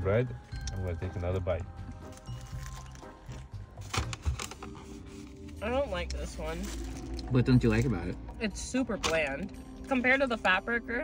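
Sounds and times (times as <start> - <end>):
quiet background music: 0.0 - 11.0
person chewing a burger: 1.8 - 5.6, 6.7 - 7.9
paper wrapper crinkling: 2.0 - 5.6, 6.4 - 7.9.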